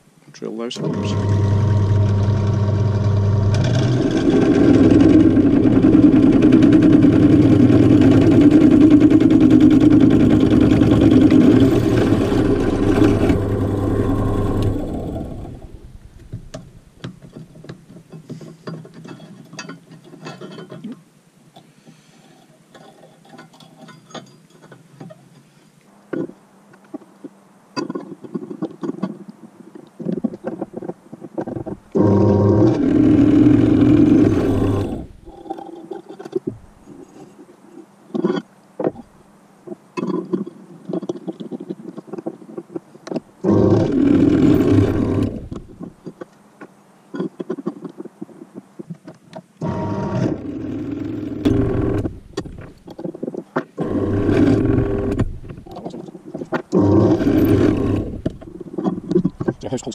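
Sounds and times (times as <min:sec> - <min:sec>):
drill press drilling into copper: 0:00.7 - 0:15.9, 0:32.0 - 0:35.4, 0:43.5 - 0:45.7, 0:49.6 - 0:52.5, 0:53.8 - 0:55.4, 0:56.7 - 0:58.4.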